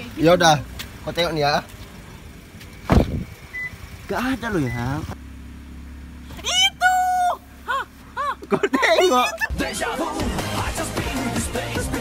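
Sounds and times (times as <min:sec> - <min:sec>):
car door thump: 0:02.8 - 0:03.3.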